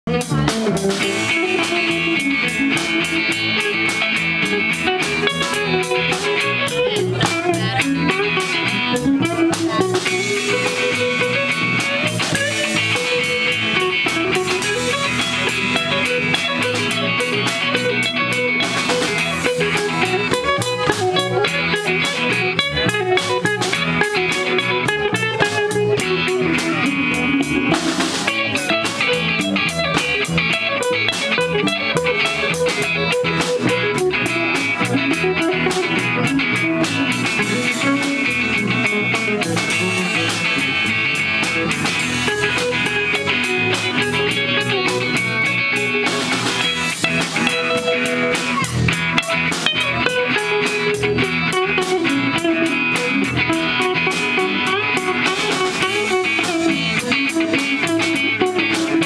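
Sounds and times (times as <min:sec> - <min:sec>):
electric bass: 0:00.0 - 0:59.0
electric guitars: 0:00.0 - 0:59.0
drum kit with cymbals: 0:00.1 - 0:59.0.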